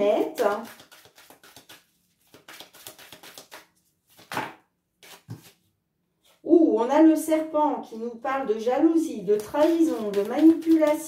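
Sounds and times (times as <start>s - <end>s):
cards shuffling: 0.3s - 5.6s, 9.4s - 11.0s
cards tapping: 0.4s - 5.5s, 9.6s - 11.0s.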